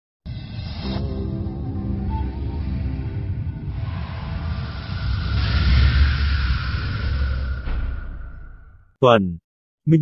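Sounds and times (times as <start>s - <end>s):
deep rumble: 0.3s - 8.9s.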